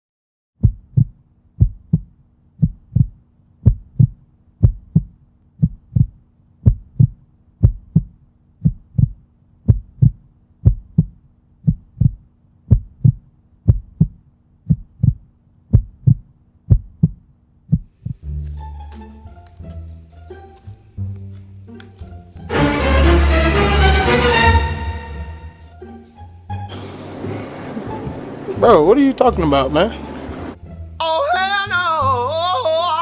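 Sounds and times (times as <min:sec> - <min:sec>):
heartbeat thumps: 0:00.6 - 0:18.3.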